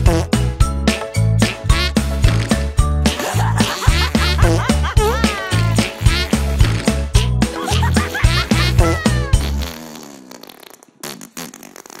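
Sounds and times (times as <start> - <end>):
cartoon fart toots: 0.0 - 0.4, 1.7 - 6.8, 7.7 - 12.0.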